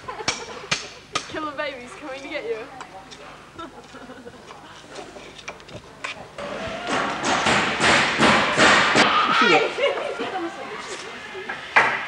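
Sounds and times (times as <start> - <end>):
raised voices: 9.0 - 11.8.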